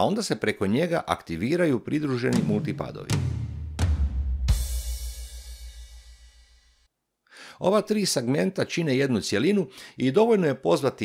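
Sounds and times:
keyboard drum accompaniment: 0:02.2 - 0:06.5
cymbal crash with bass note: 0:02.4 - 0:06.6.

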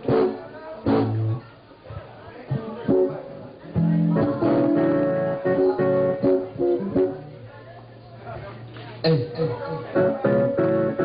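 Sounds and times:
guitar plucking and strumming: 0:02.9 - 0:07.4, 0:09.0 - 0:11.0.

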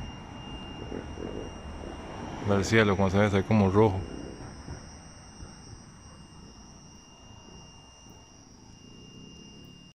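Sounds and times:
high-pitched insect chorus: 0:00.0 - 0:09.9.

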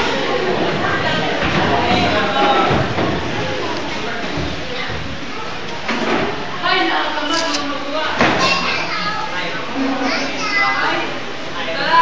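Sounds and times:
young people chattering: 0:00.0 - 0:12.0.

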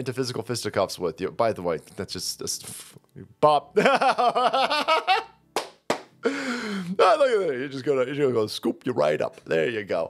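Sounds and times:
man laughing: 0:03.8 - 0:05.4.

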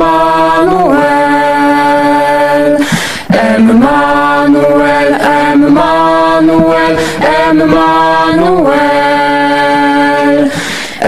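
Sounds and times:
youth choir singing hymn: 0:00.0 - 0:11.0.

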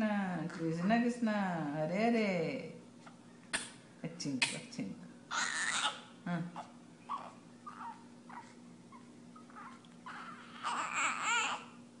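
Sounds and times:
newborn baby fussing and crying: 0:05.3 - 0:11.8.

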